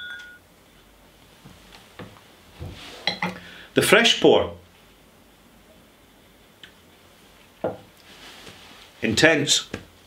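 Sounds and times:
glasses clinking and ringing: 0.0s - 0.4s.

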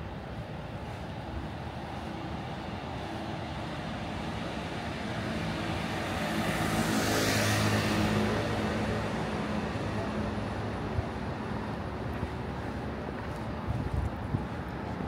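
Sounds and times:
background traffic: 0.0s - 15.0s
car passing by: 2.0s - 13.5s.

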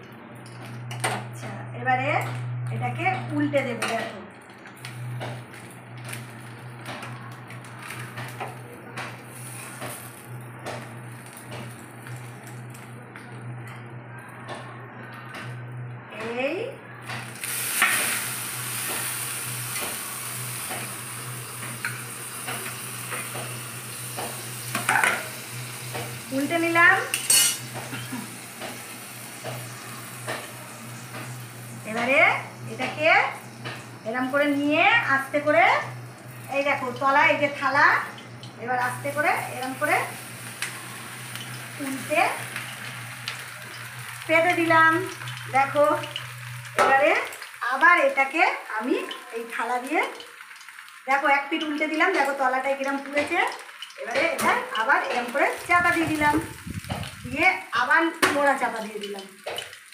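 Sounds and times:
fish parcels sizzling on metal pan: 4.8s - 13.0s, 17.0s - 59.9s.

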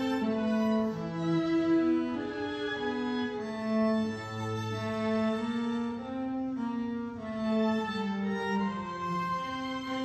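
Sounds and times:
string trio playing bowed notes: 0.0s - 10.0s.

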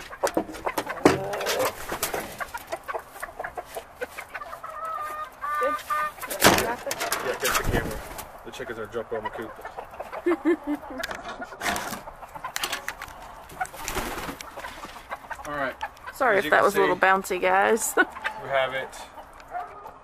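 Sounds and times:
chickens clucking: 0.0s - 20.0s
chicken pitched call: 4.0s - 6.4s.

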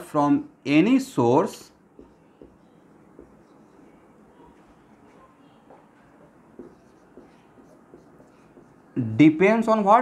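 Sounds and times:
marker tapping on whiteboard: 1.9s - 8.9s
marker scratching on whiteboard: 1.9s - 9.1s.

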